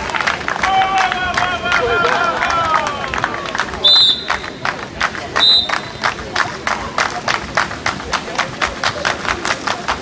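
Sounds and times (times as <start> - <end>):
crowd clapping in rhythm: 0.0 - 10.0.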